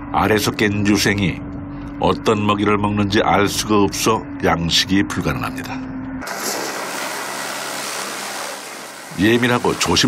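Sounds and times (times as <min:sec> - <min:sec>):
water hose spraying: 0:06.3 - 0:10.0.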